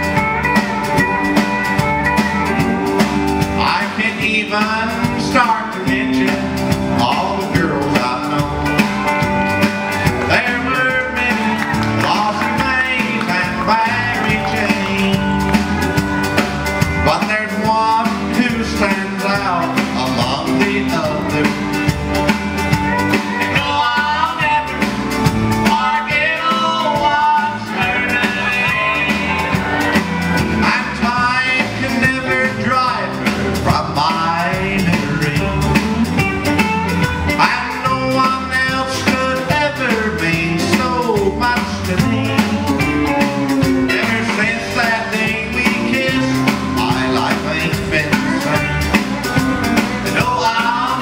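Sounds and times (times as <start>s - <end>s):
live country band playing: 0.0s - 51.0s.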